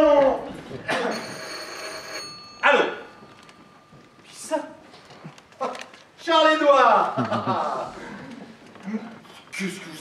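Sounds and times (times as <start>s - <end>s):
telephone ringing: 1.0s - 4.2s.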